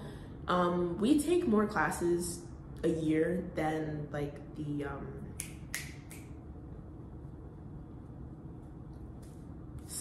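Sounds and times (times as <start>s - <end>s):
finger snaps: 5.4s - 6.4s.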